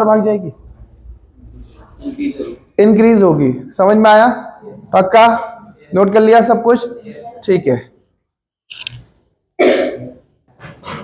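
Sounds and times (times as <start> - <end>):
person coughing: 9.6 - 11.0.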